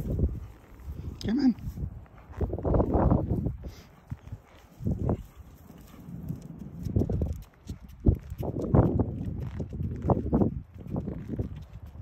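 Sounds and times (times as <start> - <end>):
footsteps on concrete: 1.6 - 12.0.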